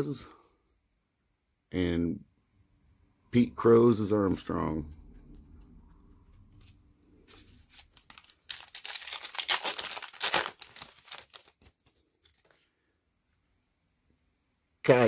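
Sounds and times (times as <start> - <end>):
plastic wrapper tearing and crinkling: 7.3 - 12.6.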